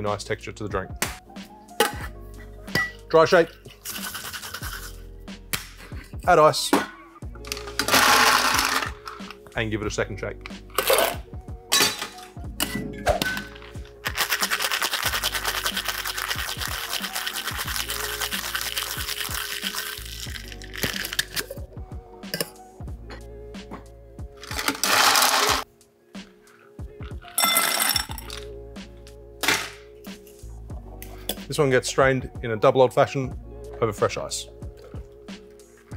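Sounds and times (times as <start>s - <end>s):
ice rattling in cocktail shaker: 3.8s - 4.9s, 7.8s - 9.0s, 13.4s - 21.5s, 24.4s - 25.6s, 27.2s - 28.4s
metal tins knocking and clinking: 10.7s - 13.8s, 27.2s - 28.4s.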